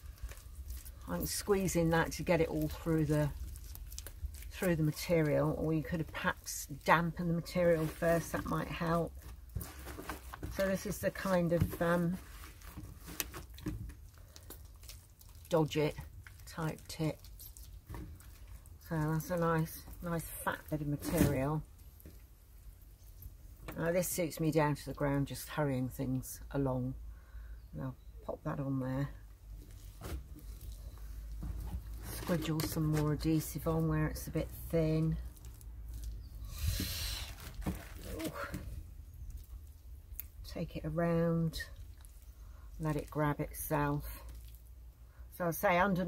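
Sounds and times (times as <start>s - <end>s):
hands squeezing wet rag: 0.0s - 20.3s, 29.6s - 33.6s, 35.1s - 40.5s, 41.7s - 45.1s
wet cloth rag squeezed: 12.4s - 19.0s.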